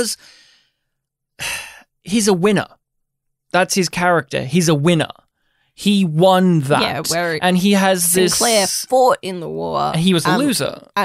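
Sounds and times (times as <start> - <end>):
person speaking: 5.8 - 11.0.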